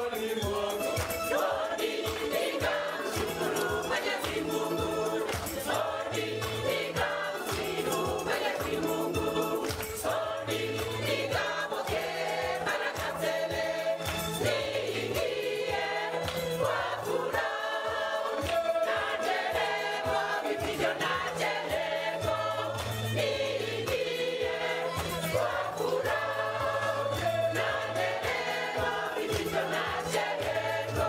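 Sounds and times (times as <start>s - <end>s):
church choir singing a hymn: 0.0s - 31.0s
steady percussive beat: 0.0s - 31.0s.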